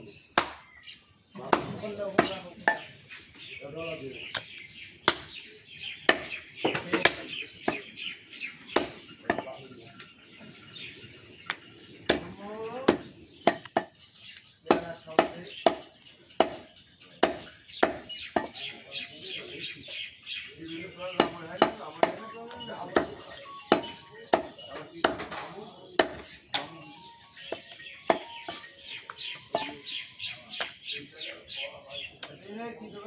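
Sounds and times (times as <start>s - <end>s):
birds chirping: 0.0s - 33.0s
cleaver chopping meat on wood: 0.3s - 0.8s, 1.4s - 2.9s, 4.3s - 5.4s, 6.0s - 7.9s, 8.7s - 9.5s, 11.5s - 13.9s, 14.7s - 18.6s, 21.2s - 26.7s, 27.5s - 29.8s.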